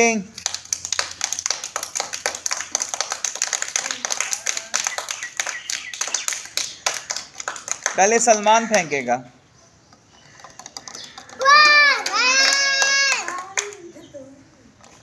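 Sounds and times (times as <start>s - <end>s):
children clapping: 0.4s - 8.5s, 11.3s - 14.0s.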